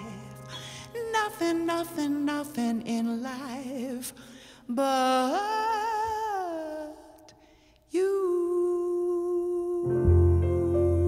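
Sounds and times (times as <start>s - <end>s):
woman singing jazz: 0.0s - 7.2s, 7.9s - 11.0s
low musical accompaniment: 9.8s - 11.0s.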